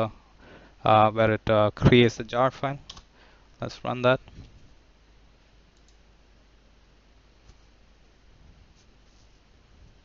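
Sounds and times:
faint clicks: 5.8s - 6.0s.

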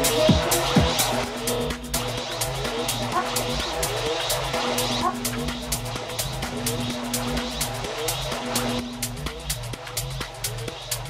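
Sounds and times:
tech house beat with bassline: 0.0s - 11.0s
held synth note: 4.6s - 9.2s.

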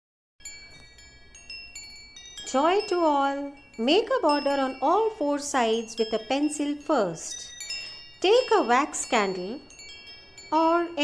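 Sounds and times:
chimes ringing: 0.4s - 11.0s.

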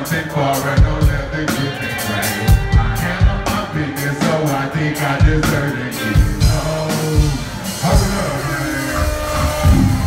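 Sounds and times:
drums: 0.0s - 10.0s
heavy drum hit: 9.3s - 10.0s.

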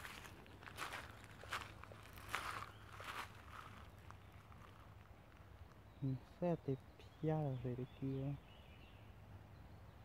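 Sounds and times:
footsteps on gravel: 0.0s - 5.5s.

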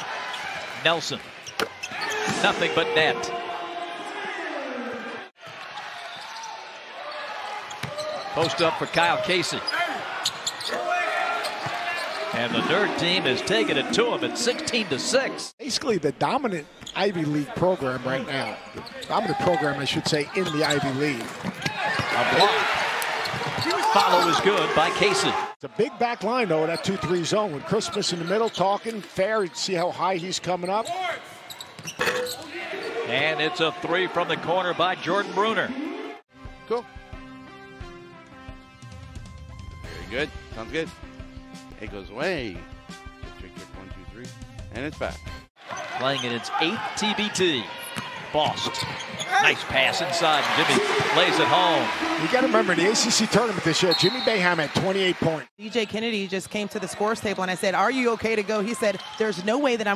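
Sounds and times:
crowd and player voices: 0.0s - 36.2s, 45.6s - 59.9s
crowd reacting: 45.6s - 55.5s.

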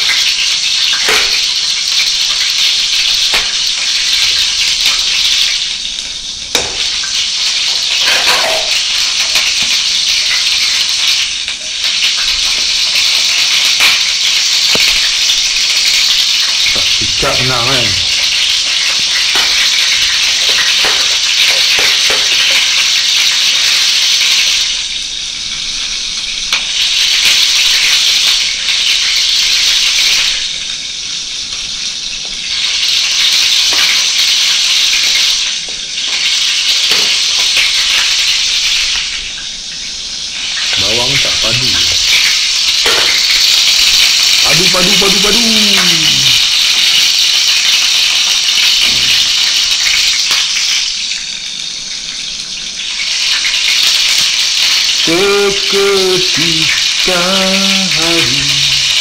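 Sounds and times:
fish sizzling in hot oil: 0.0s - 59.0s.

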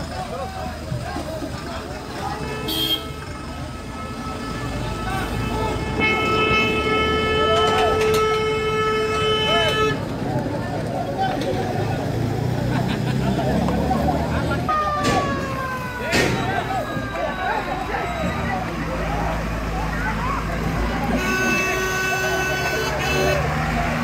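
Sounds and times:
crowd voices: 0.0s - 24.0s
vehicle engines running: 0.0s - 24.0s
vehicle horn: 2.4s - 10.1s, 21.0s - 23.6s.

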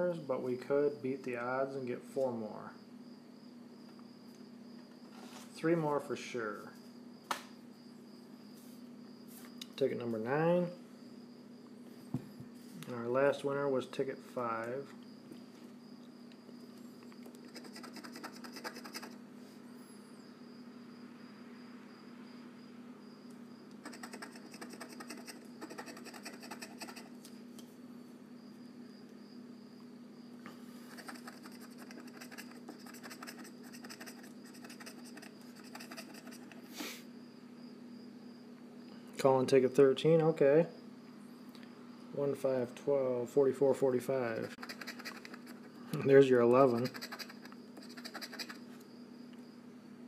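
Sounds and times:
lottery ticket being scratched: 17.4s - 19.2s, 23.8s - 27.2s, 30.9s - 36.5s, 44.4s - 45.7s, 46.4s - 48.6s.

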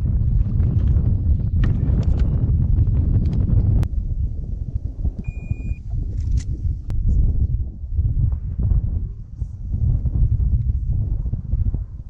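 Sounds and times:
wind buffeting microphone: 0.0s - 12.0s
short high beep: 5.3s - 5.8s.

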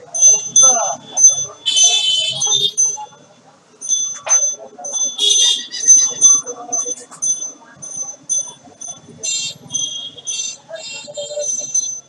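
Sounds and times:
faint voices: 0.0s - 12.0s
high-pitched electronic beeping: 0.1s - 12.0s.

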